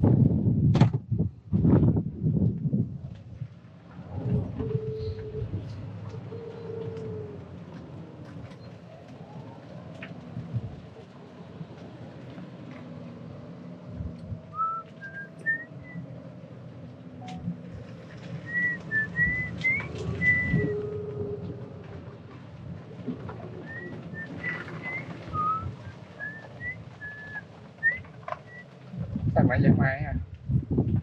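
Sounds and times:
golf cart driving: 2.0s - 29.4s
person whistling a melody: 14.6s - 16.0s, 18.5s - 20.7s, 23.7s - 28.6s.

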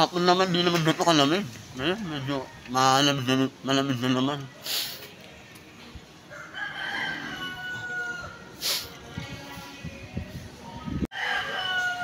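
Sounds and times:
rooster crowing: 6.3s - 8.5s, 11.1s - 12.0s.

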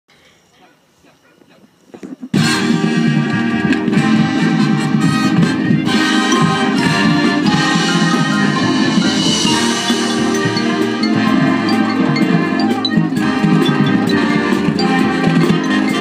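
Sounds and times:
marching band brass playing: 2.4s - 16.0s.

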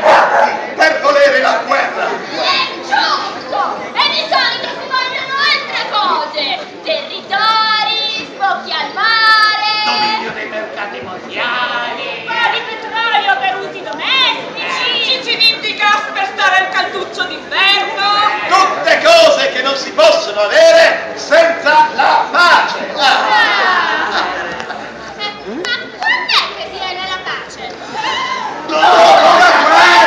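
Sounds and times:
people talking and exclaiming: 0.0s - 30.0s.

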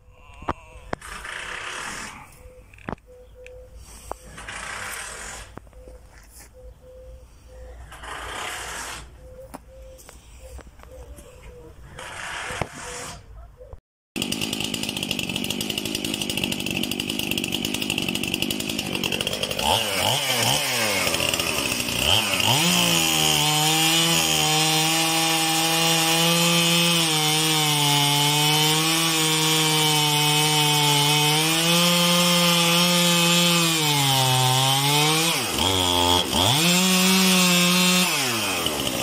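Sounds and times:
chainsaw running: 0.9s - 2.3s, 4.3s - 5.6s, 7.9s - 9.0s, 14.2s - 39.0s.

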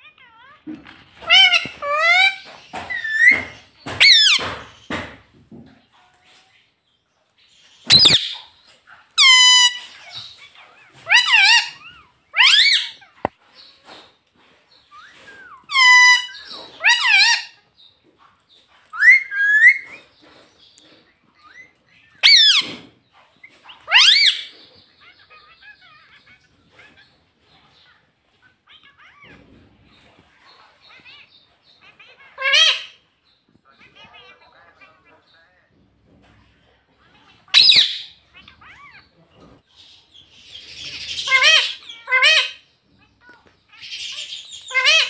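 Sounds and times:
parakeet calling loudly: 1.2s - 4.6s, 7.8s - 8.6s, 9.2s - 13.3s, 15.6s - 17.7s, 19.0s - 20.0s, 21.4s - 22.8s, 23.6s - 27.1s, 30.8s - 33.4s, 37.5s - 39.1s, 40.4s - 42.7s, 43.7s - 45.0s.

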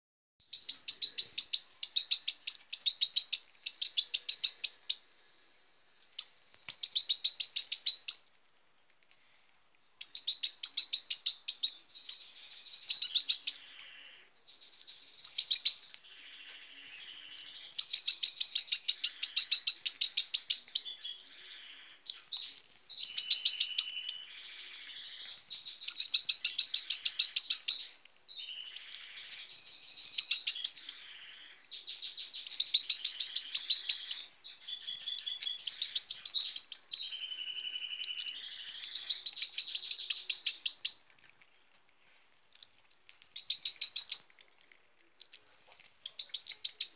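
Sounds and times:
young bird chirping: 0.4s - 5.1s, 6.1s - 8.3s, 10.0s - 41.0s, 43.1s - 44.4s, 46.0s - 46.9s
faint bird twittering: 0.4s - 8.3s, 10.0s - 41.0s.

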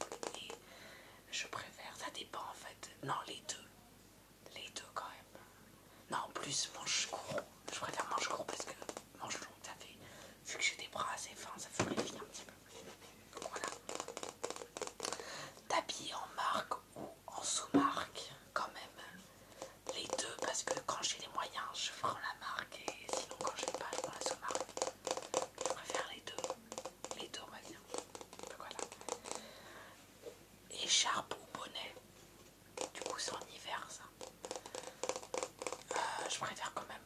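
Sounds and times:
close whispering: 1.3s - 3.7s, 4.5s - 13.8s, 15.1s - 24.7s, 25.6s - 29.6s, 30.7s - 32.0s, 32.9s - 34.1s, 35.8s - 37.0s.

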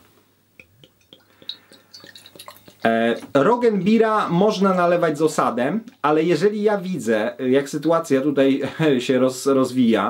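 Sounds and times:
beer glugging and splashing: 0.6s - 5.0s.

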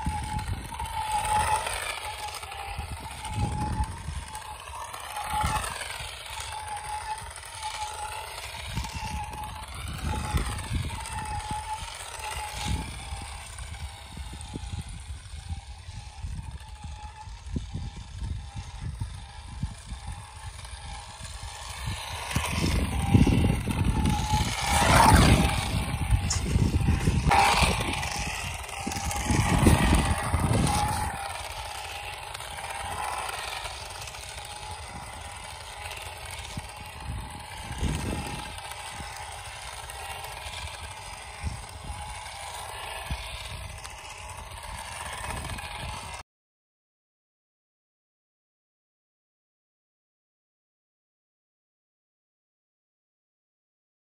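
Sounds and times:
toy car electric motor whining: 0.0s - 46.2s.

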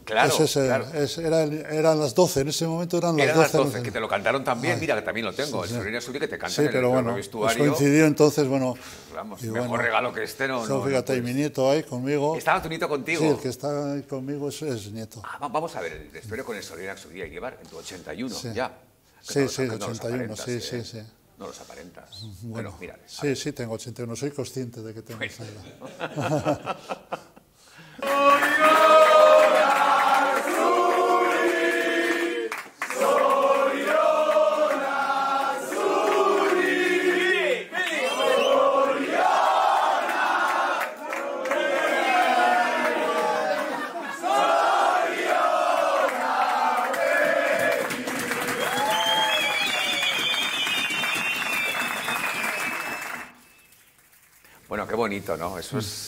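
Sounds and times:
group singing in chorus: 28.0s - 48.7s
men clapping and cheering: 28.0s - 54.6s.

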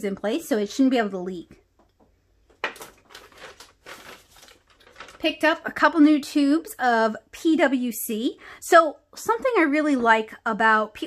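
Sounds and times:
plastic bag rustling: 2.5s - 5.6s.

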